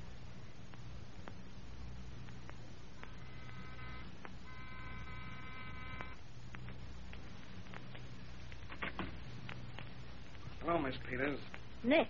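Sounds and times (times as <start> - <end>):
recording hum and crackle: 0.0 - 12.0
electric buzzer: 3.0 - 6.2.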